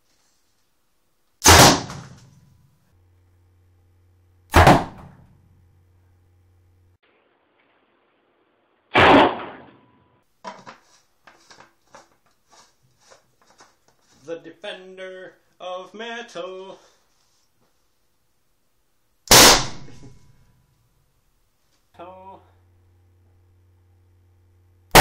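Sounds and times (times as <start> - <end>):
potato gun blasts: 1.4 - 2.3, 4.5 - 5.2, 8.9 - 9.8, 19.3 - 20.0.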